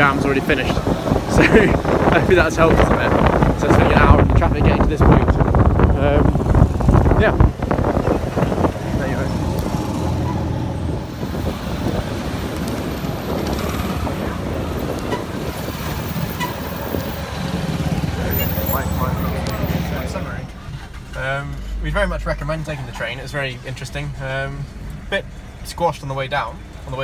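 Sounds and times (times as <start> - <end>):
road traffic rushing: 0.0 - 27.0.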